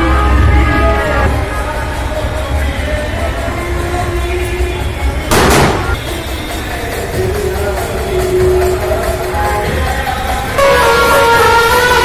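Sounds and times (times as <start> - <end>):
loud noisy crash: 5.3 - 6.1
procession band music: 10.4 - 12.0.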